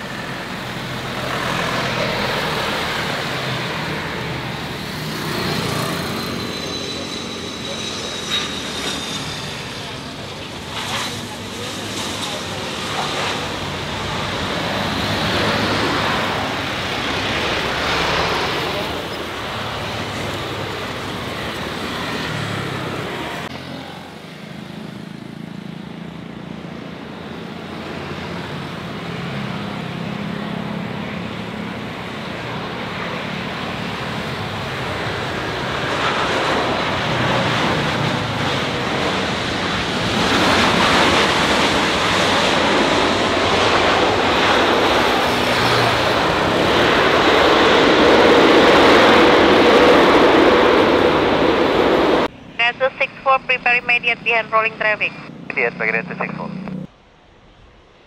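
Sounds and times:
airliner jet engine landing: 0.0 - 58.0
business jet engine: 0.0 - 58.0.

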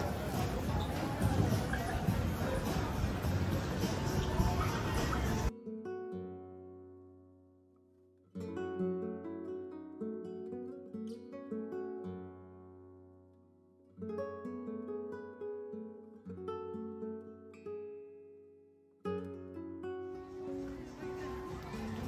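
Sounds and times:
plucked acoustic guitar: 0.0 - 22.0.

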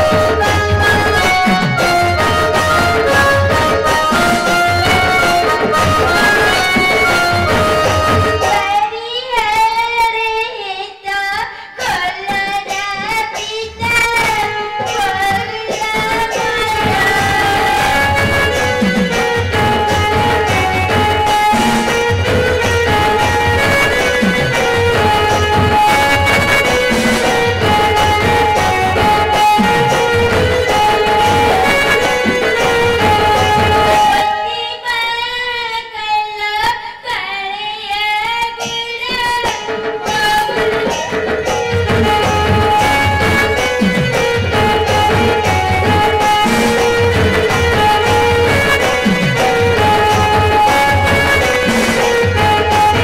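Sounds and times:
backing music: 0.0 - 8.8, 13.8 - 34.6, 39.1 - 53.0.

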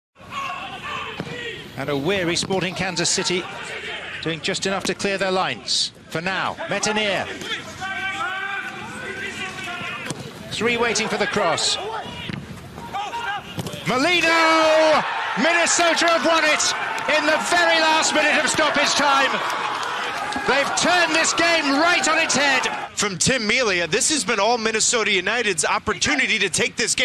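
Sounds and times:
pitch-side crowd ambience: 0.2 - 27.0
players shouting: 0.3 - 1.8, 2.8 - 4.2, 6.6 - 23.0
soccer ball thud: 13.6 - 13.9
man commentating excitedly: 13.8 - 19.5, 20.4 - 27.0.

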